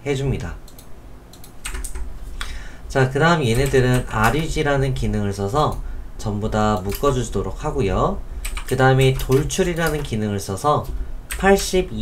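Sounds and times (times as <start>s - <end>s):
keyboard keys clicking: 0.7s - 2.1s, 3.5s - 4.6s, 6.7s - 7.2s, 8.4s - 10.2s, 10.8s - 11.9s.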